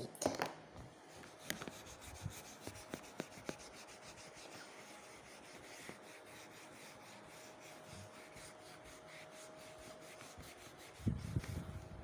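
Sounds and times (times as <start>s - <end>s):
eraser rubbing whiteboard: 1.1s - 11.9s.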